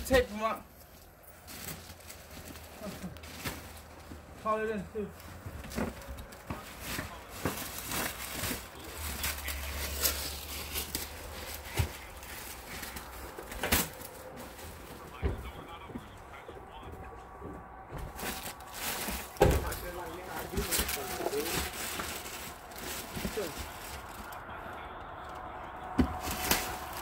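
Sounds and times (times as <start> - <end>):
rustles and clicks of handling: 0.0 - 27.0
faint indistinct voices: 5.2 - 27.0.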